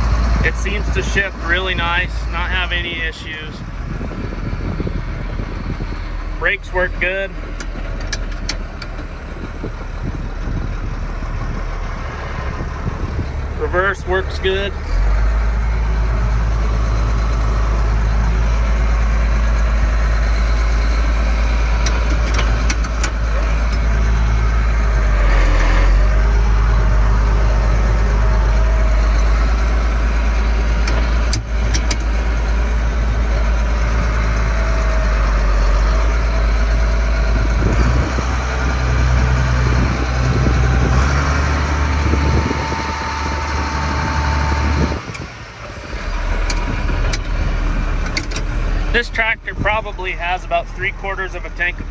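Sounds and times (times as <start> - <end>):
tractor diesel engine running: 0.0 - 51.9
sharp clicks: 21.8 - 23.9, 30.8 - 32.1.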